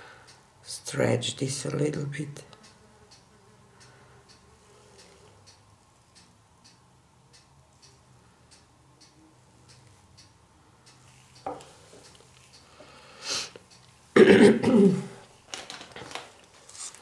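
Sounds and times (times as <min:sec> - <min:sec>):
faint regular ticking: 0:00.1 - 0:00.6, 0:02.5 - 0:14.1
breathy intake of breath: 0:12.7 - 0:13.6
person coughing hard: 0:14.2 - 0:15.2.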